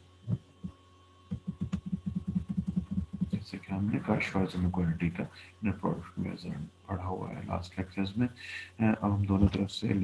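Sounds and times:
steady low hum: 0.0s - 10.0s
soft low thumps: 0.2s - 3.6s
fast short low pulses: 1.3s - 4.2s.

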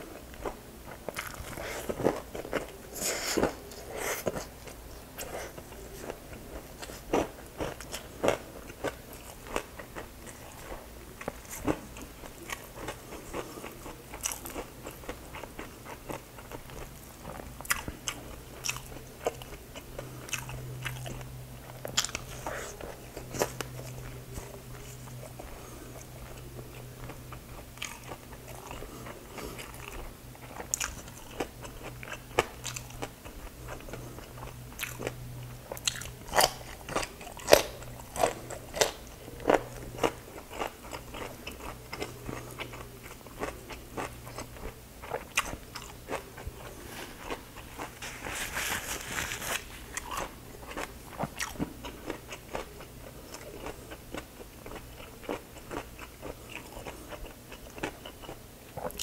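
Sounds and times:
mouth chewing crunchy food: 0.1s - 59.0s.

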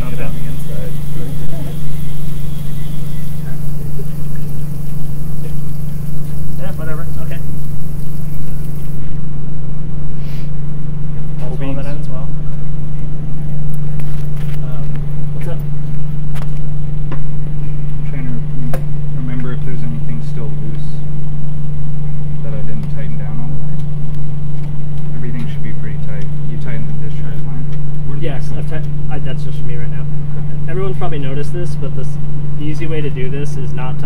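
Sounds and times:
loud low machine hum: 0.0s - 34.0s.

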